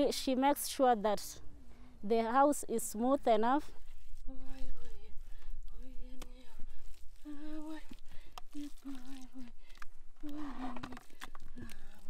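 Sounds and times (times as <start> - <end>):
low steady rumble: 0.8 - 12.0
person humming a slow tune: 4.2 - 6.6, 7.2 - 9.6, 10.2 - 11.9.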